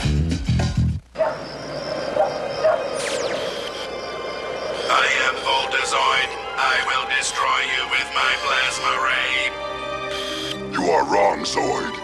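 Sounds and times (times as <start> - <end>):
crickets chirping: 1.0 - 10.8.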